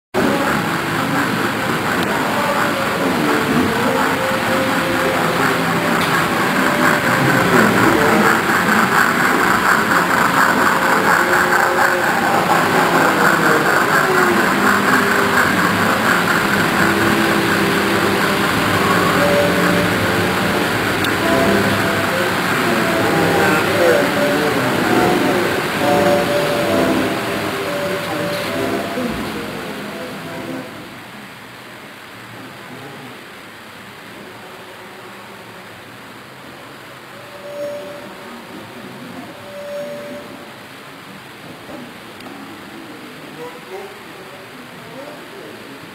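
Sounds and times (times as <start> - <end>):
model train whirring rattle: 0.2 - 31.0.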